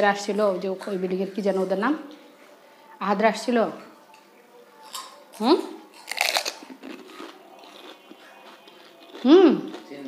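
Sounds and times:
crisp shells crunching when chewed: 0:05.9 - 0:10.0.

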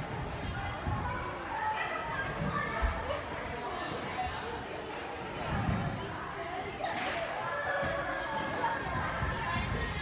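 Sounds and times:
children chattering: 0:00.2 - 0:10.0.

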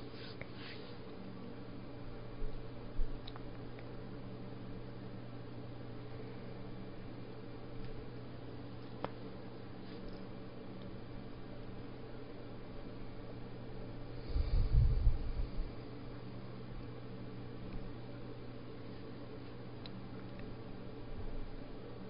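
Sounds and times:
low hum with hiss: 0:00.0 - 0:22.0
muffled low rumble: 0:14.2 - 0:15.8.

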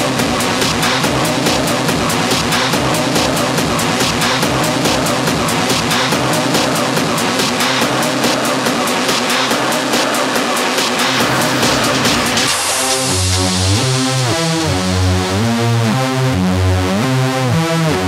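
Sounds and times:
industrial techno music: 0:00.0 - 0:18.0.

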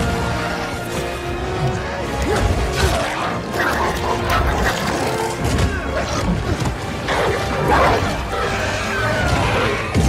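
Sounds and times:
orchestral score music: 0:00.0 - 0:10.0
creatures snarling and screeching: 0:02.1 - 0:10.0.

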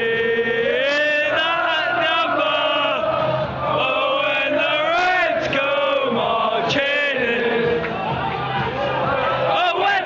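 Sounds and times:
football supporters chanting: 0:00.0 - 0:10.0.

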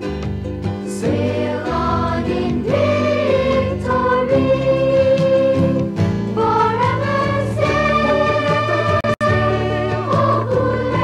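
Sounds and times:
instrumental backing music: 0:00.0 - 0:11.0
choir singing: 0:00.9 - 0:11.0.

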